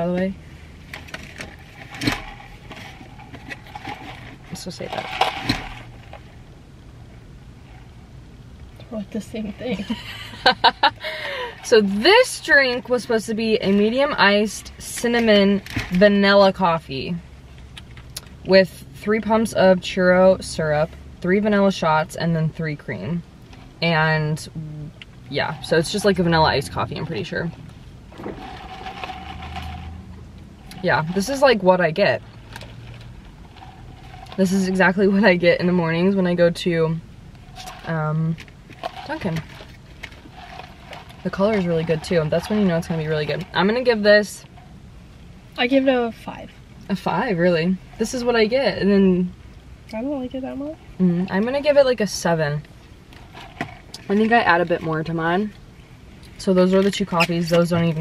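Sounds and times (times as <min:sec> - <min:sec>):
plastic cup and straw handling: 0:37.4 - 0:43.9.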